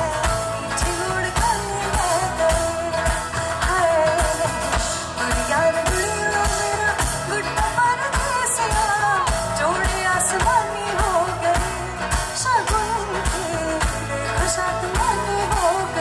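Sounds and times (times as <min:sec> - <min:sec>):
live band playing: 0:00.0 - 0:16.0
woman singing pop song: 0:00.0 - 0:16.0.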